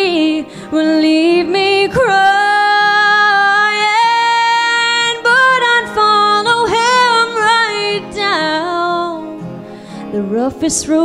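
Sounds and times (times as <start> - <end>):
acoustic guitar: 0.0 - 11.0
woman singing country ballad: 0.0 - 11.0.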